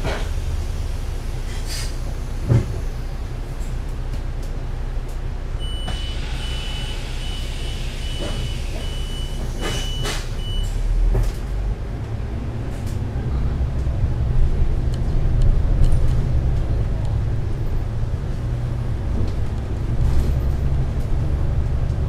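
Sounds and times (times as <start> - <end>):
bus engine idling: 0.0 - 22.0
high door warning beeps: 5.6 - 10.7.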